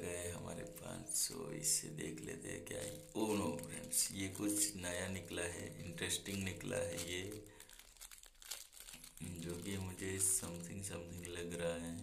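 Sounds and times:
person speaking: 0.0 - 7.6, 8.8 - 12.0
plastic wrapper crinkling: 2.6 - 12.0.

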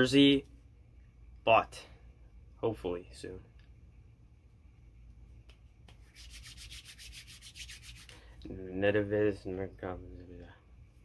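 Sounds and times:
faint quick rubbing strokes: 5.9 - 8.2.

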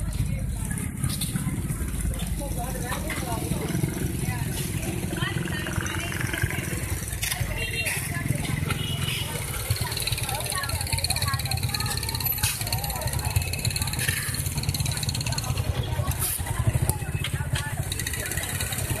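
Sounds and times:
motorcycle engines idling: 0.0 - 19.0
people talking: 0.0 - 19.0.

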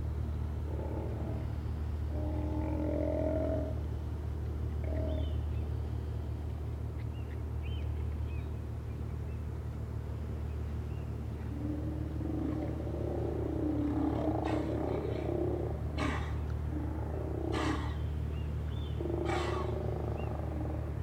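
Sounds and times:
steady low hum: 0.0 - 21.0
sea lions growling and roaring: 0.6 - 3.8, 11.4 - 18.2, 18.9 - 21.0.

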